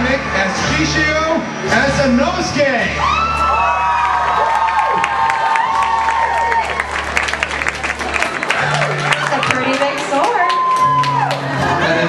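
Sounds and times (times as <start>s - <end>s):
audience cheering: 2.9s - 12.0s
audience clapping: 3.5s - 11.8s.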